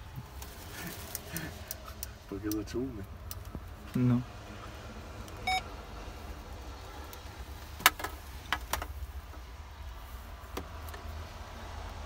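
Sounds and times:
low rumble inside truck cab: 0:00.0 - 0:12.0.

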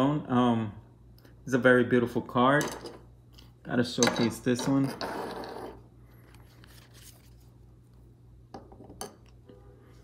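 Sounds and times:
plastic card sleeve rustling: 0:06.2 - 0:07.6.

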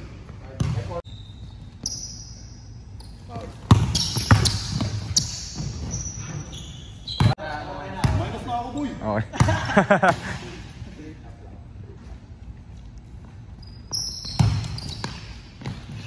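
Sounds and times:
sneakers squeaking on floor: 0:00.0 - 0:07.4, 0:13.1 - 0:16.0.

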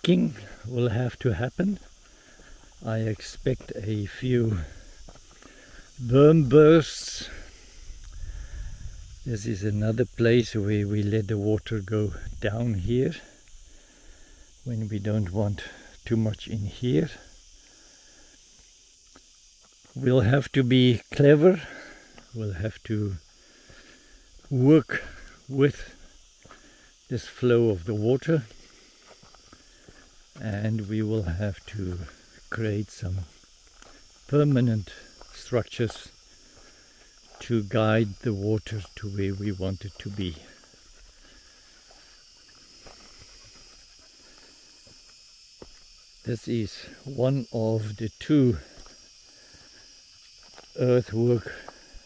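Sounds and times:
faint open-air hiss: 0:00.0 - 0:52.0
high-pitched insect chorus: 0:00.0 - 0:52.0
soft footfalls on dry ground: 0:01.7 - 0:06.6, 0:28.4 - 0:38.2, 0:39.9 - 0:46.0, 0:48.7 - 0:50.8
man's voice: 0:02.8 - 0:04.7, 0:37.4 - 0:40.5.

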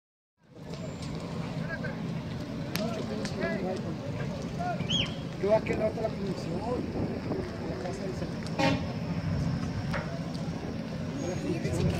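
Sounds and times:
fire rumbling and crackling: 0:00.4 - 0:11.9
people talking: 0:00.5 - 0:11.9.

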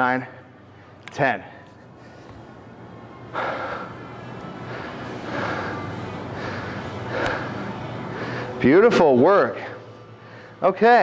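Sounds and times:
man breathing hard: 0:03.3 - 0:08.6, 0:10.1 - 0:10.6.

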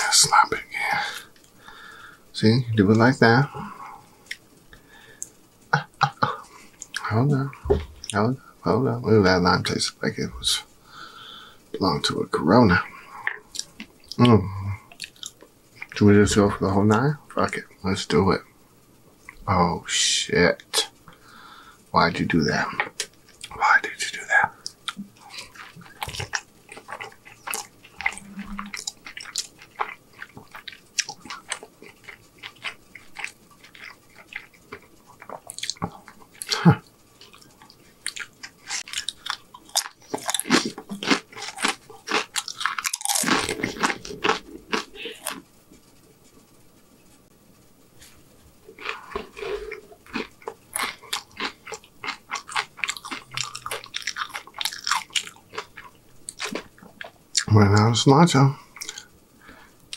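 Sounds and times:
crunching and chewing food: 0:12.7 - 0:16.6, 0:20.6 - 0:46.5, 0:48.0 - 0:58.0, 0:58.6 - 0:59.9.

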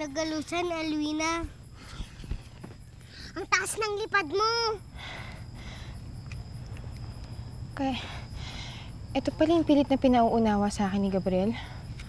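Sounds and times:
crickets chirping: 0:00.0 - 0:12.0
low steady rumble: 0:00.0 - 0:12.0.

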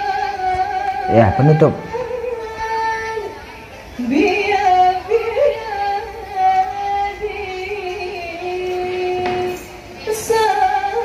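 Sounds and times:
woman singing ornamented notes: 0:00.0 - 0:11.0.

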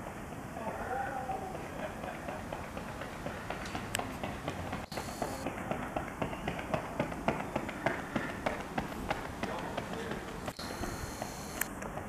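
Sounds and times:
running footsteps on track: 0:00.0 - 0:12.0.

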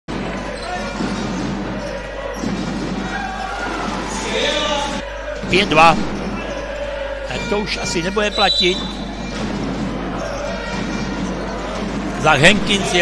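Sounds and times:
voices in arena: 0:00.1 - 0:13.0
commentator speaking loudly: 0:07.3 - 0:08.9, 0:12.2 - 0:13.0.

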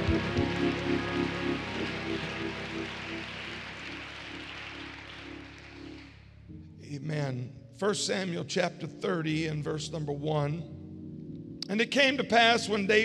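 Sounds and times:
congregation applauding: 0:00.0 - 0:06.4
music with sustained chords: 0:00.0 - 0:13.0.

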